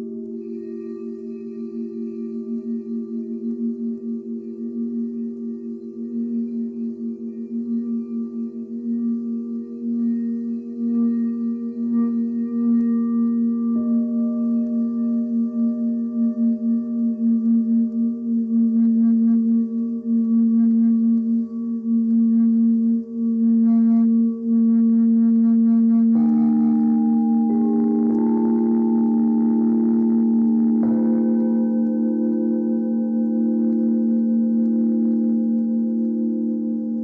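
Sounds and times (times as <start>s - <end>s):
singing bowls sustained tones: 0.0s - 37.0s.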